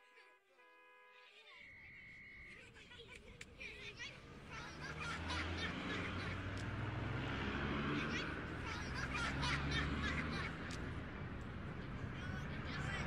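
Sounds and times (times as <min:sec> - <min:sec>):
street noise: 0:00.0 - 0:13.0.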